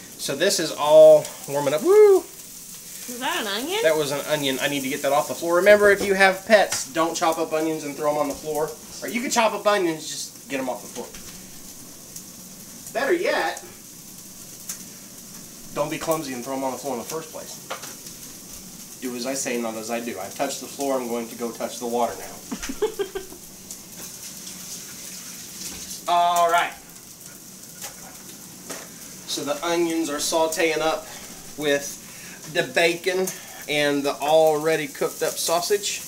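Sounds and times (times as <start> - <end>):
food sizzling in hot pan: 0.0 - 36.0.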